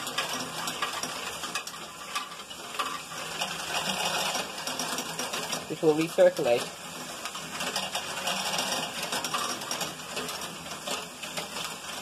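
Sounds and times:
motor-driven machinery running: 3.1 - 10.3.

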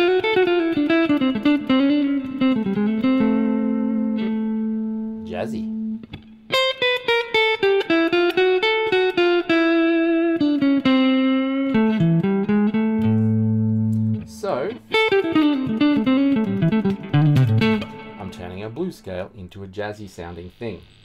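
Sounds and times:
electric guitar jazzy single-note line: 0.0 - 19.0.

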